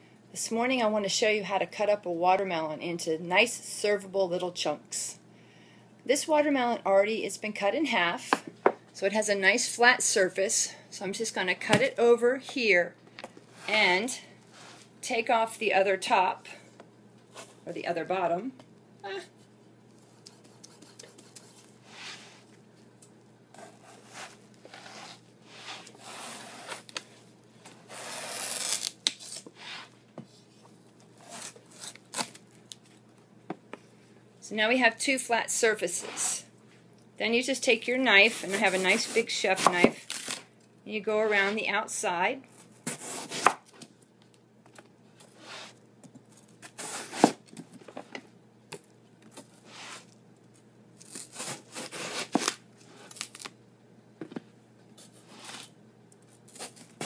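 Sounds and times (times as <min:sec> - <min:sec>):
watermelon scraping on cutting board: 0:23.6 - 0:26.9
knife slicing watermelon rind: 0:42.9 - 0:43.6.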